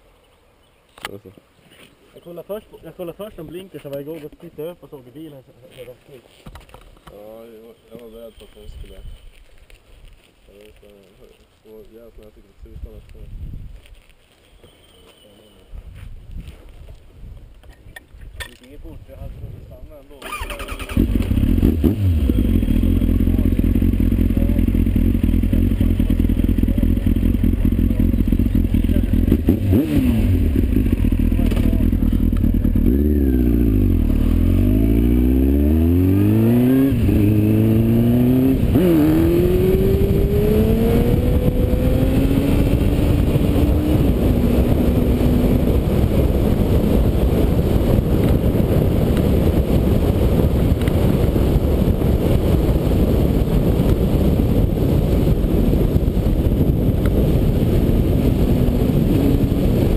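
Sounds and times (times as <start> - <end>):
wind and road noise: 0.0 - 59.9
motorcycle engine: 20.2 - 59.9.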